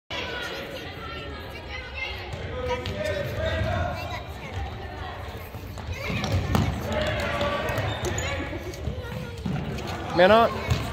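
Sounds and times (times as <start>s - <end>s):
echoing voices: 0.2s - 10.9s
ball kicked and bouncing: 5.7s - 8.2s, 10.6s - 10.9s.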